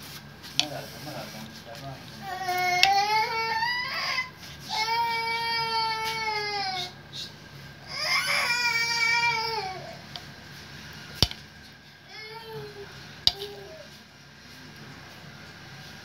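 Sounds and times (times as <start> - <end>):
baby crying: 2.2 - 6.9, 7.9 - 10.0.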